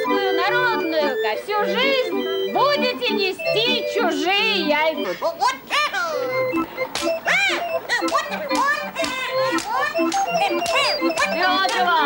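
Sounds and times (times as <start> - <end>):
puppet squeaky voice chatter: 0.0 - 12.0.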